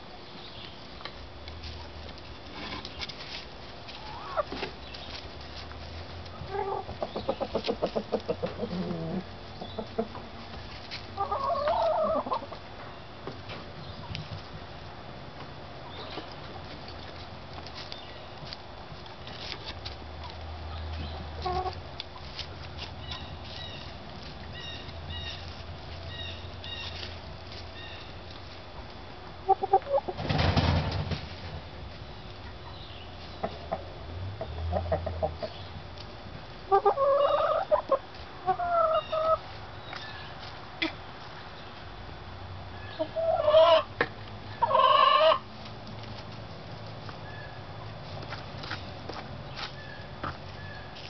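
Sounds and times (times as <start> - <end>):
hens clucking: 2.8 - 12.9, 17.8 - 30.4, 32.3 - 41.5, 42.8 - 45.5.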